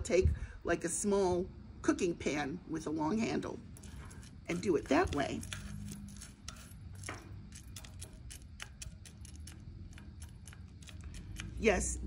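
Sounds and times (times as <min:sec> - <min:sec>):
wooden spoon stirring beans: 0:03.3 - 0:12.0
coffee beans clicking in a pan: 0:03.7 - 0:12.0.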